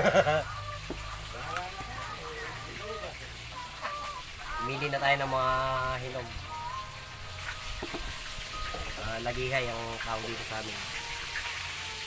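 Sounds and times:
fruit knocking together: 0:07.8 - 0:08.1.

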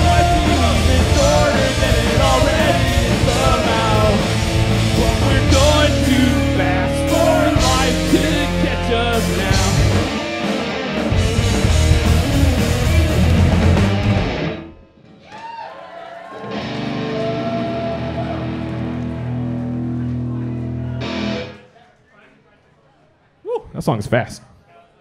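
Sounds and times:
pop punk band playing: 0:00.0 - 0:14.8, 0:16.4 - 0:21.6.

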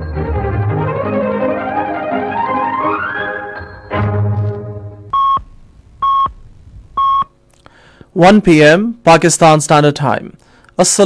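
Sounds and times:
string music chord: 0:00.0 - 0:05.1.

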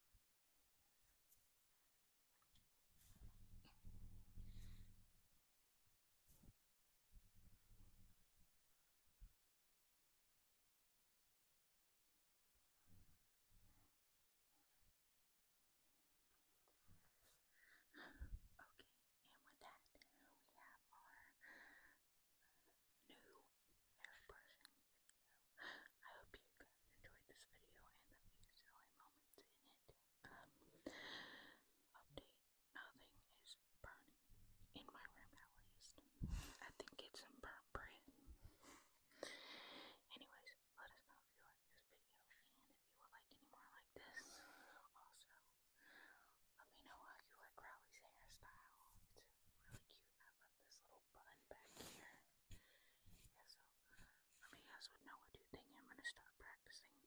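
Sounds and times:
soft whispering: 0:01.6 - 0:05.1, 0:16.4 - 0:57.0.

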